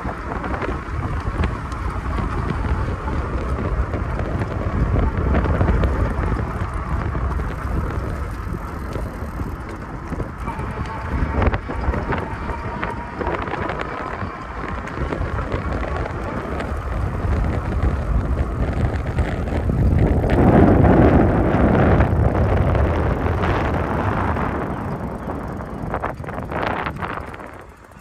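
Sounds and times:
bicycle tyre road noise: 0.0s - 28.0s
wind buffeting microphone: 0.0s - 28.0s.

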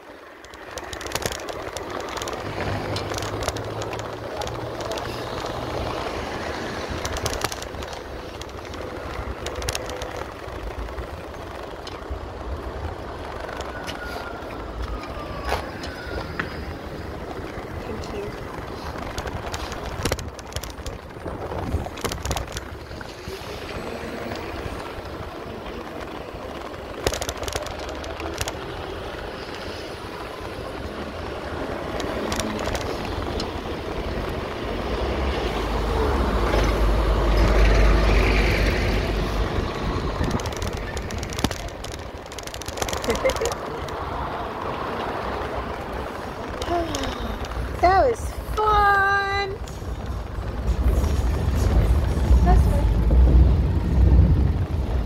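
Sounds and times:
road rumble: 0.0s - 55.0s
wind on microphone: 0.6s - 48.6s, 49.2s - 55.0s.

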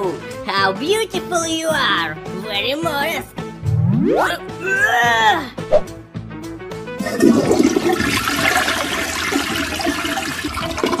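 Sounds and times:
toilet flushing: 7.0s - 11.0s.

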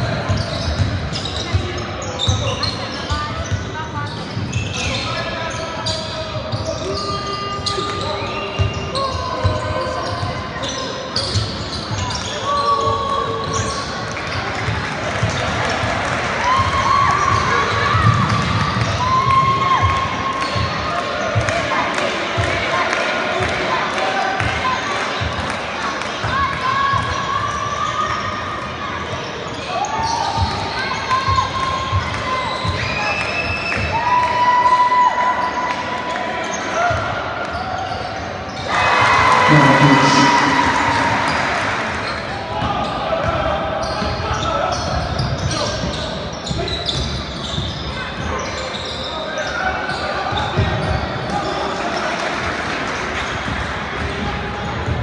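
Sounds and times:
people shouting in a hall: 15.6s - 25.1s, 25.9s - 37.8s, 38.6s - 45.9s.

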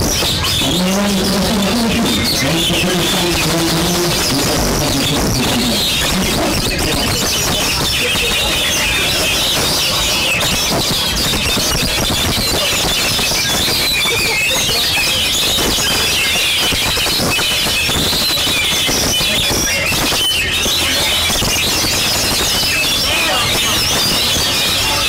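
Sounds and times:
many birds singing and chattering: 0.0s - 25.0s.

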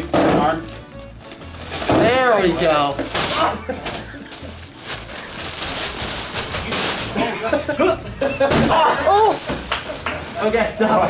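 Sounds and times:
foil balloon crinkling: 0.0s - 7.7s, 8.8s - 11.0s.

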